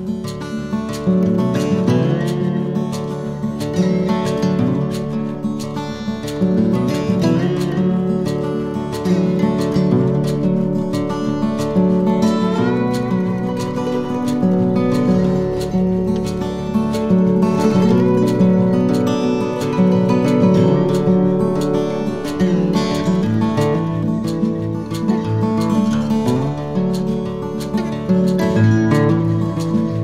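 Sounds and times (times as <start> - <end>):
acoustic guitar music: 0.0 - 30.0.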